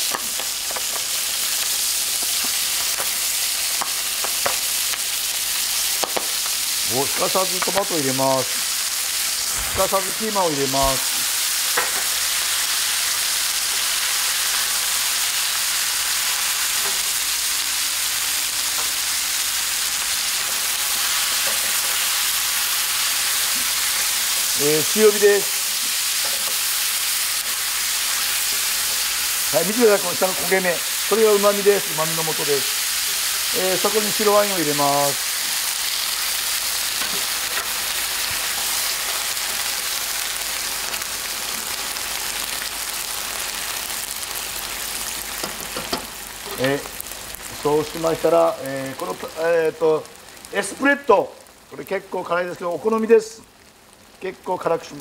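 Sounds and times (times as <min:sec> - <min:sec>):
chicken sizzling in hot oil: 0:00.0 - 0:55.0
spatula turning food: 0:18.0 - 0:42.6.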